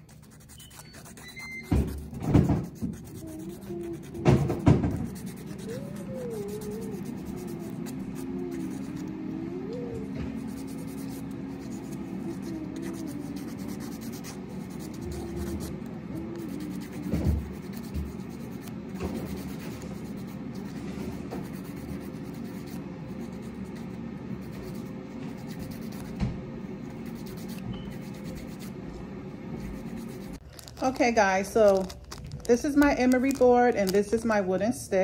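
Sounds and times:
nail file rasping on fingernail: 0:00.0 - 0:26.2, 0:26.9 - 0:28.7, 0:29.6 - 0:30.8.

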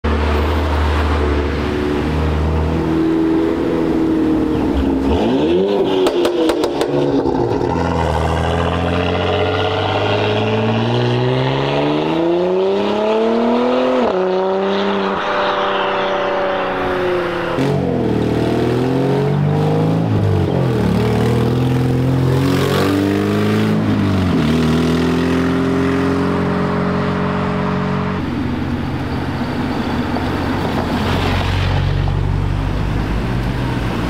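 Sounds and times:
car engine and exhaust: 0:00.0 - 0:34.0.

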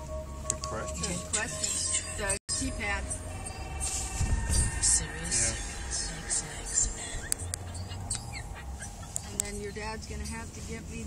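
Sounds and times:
car driving rumble: 0:00.0 - 0:11.0
car radio music: 0:00.0 - 0:11.0.

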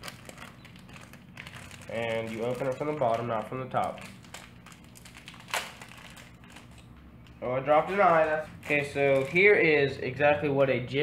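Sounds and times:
plastic package crinkling: 0:00.0 - 0:09.6.

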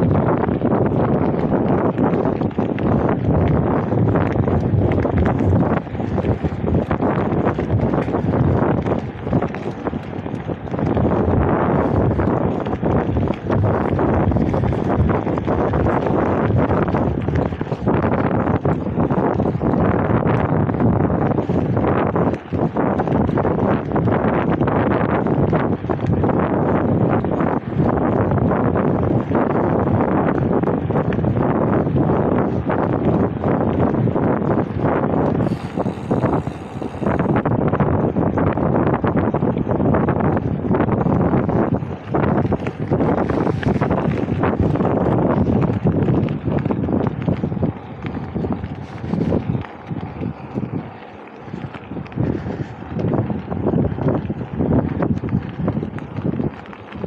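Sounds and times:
wind noise on microphone: 0:00.0 - 0:57.0.

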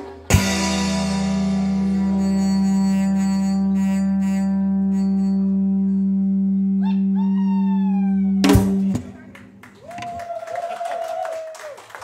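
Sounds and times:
sustained low guitar note: 0:00.3 - 0:09.6.

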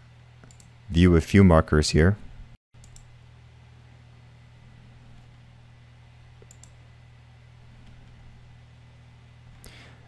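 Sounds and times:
low electrical hum: 0:00.0 - 0:10.0
computer mouse clicks: 0:00.4 - 0:00.7, 0:02.8 - 0:03.1, 0:06.4 - 0:06.8.

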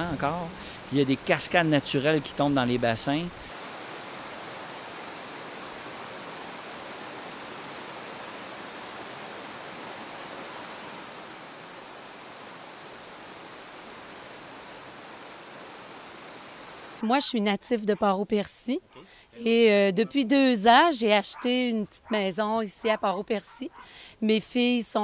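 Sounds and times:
river cascading over rocks: 0:00.0 - 0:17.0.

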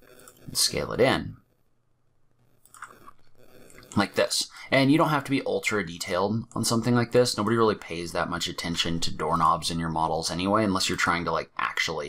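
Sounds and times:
man speaking: 0:00.0 - 0:01.4, 0:03.8 - 0:12.0
faint mouth sounds: 0:02.6 - 0:04.2
breath: 0:04.5 - 0:04.7.

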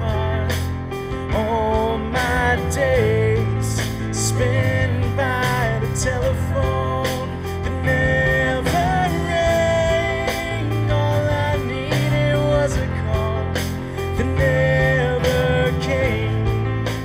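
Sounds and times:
electric guitar: 0:00.0 - 0:17.0
keyboard: 0:00.0 - 0:17.0
man singing: 0:00.0 - 0:17.0
steady beat: 0:00.3 - 0:17.0.

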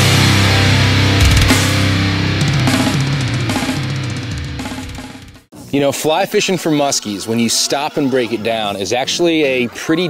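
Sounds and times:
heavy rock music: 0:00.0 - 0:05.5.

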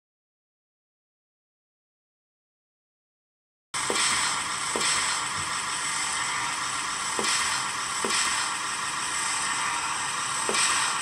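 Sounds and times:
hissy mechanical running noise: 0:03.8 - 0:11.0.

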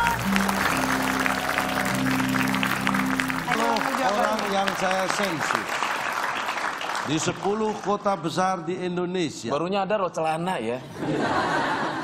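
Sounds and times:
audience clapping: 0:00.0 - 0:08.5.

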